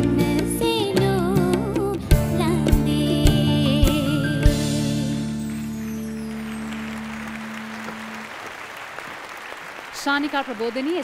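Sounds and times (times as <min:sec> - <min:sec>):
studio audience applauding: 0:05.3 - 0:11.0.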